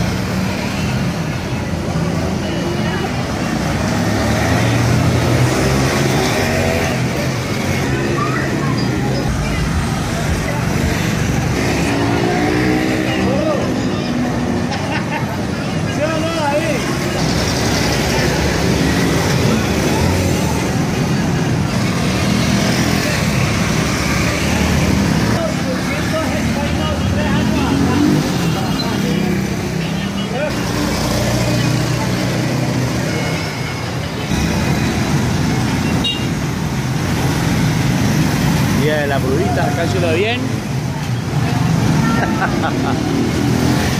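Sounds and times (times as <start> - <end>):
motorcycle engines passing: 0.0 - 43.9
people's voices: 0.0 - 43.9.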